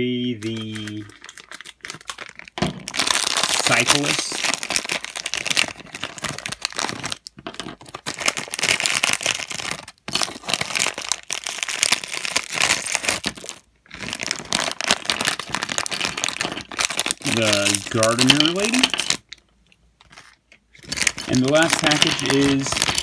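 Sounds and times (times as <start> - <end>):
plastic packet crinkling and tearing: 0.1 - 19.4, 20.0 - 23.0.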